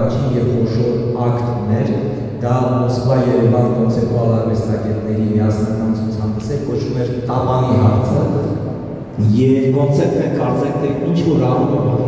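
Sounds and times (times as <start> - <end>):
man talking into a microphone: 0.0 - 12.0.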